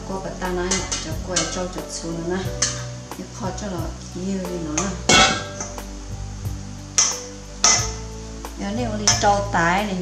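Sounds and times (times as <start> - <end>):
background music: 0.0 - 10.0
utensil clinking against metal bowl: 0.7 - 1.8, 7.0 - 8.0.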